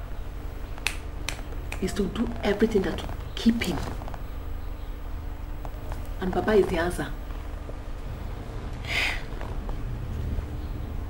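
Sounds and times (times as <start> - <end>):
low steady hum: 0.0 - 11.0
woman speaking: 1.8 - 4.0, 6.2 - 7.3.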